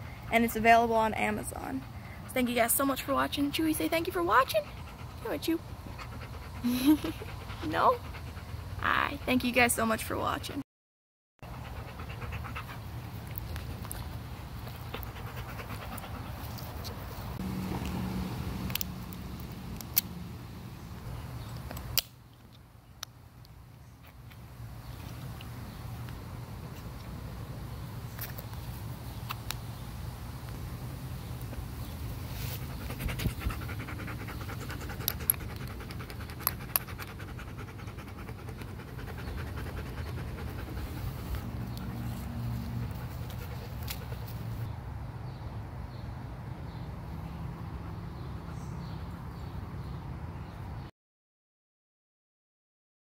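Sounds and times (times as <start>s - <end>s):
dog panting: 4.0s - 9.6s, 11.4s - 13.8s, 14.8s - 17.4s, 32.6s - 44.6s.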